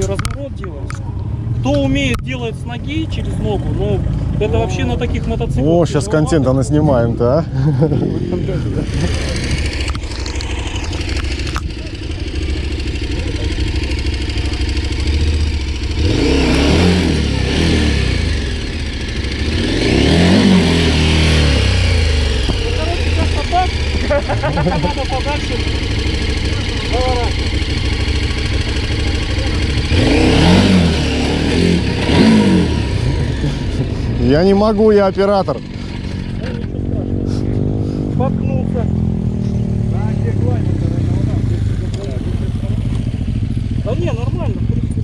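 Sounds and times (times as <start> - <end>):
motorcycle engine revving: 0.0 - 45.0.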